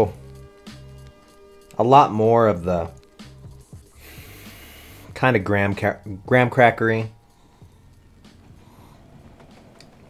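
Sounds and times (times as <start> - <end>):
person breathing through nose: 3.9 - 5.2, 7.3 - 9.2.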